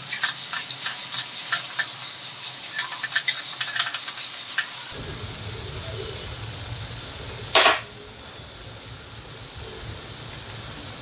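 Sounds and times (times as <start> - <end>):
mixture sizzling in a pan: 0.0 - 11.0.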